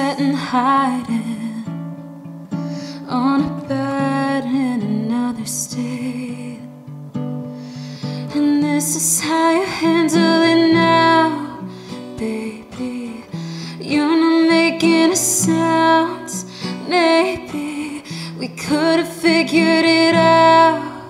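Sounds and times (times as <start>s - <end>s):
woman singing: 0.0s - 2.2s, 2.8s - 6.9s, 8.0s - 21.0s
acoustic guitar: 0.0s - 21.0s.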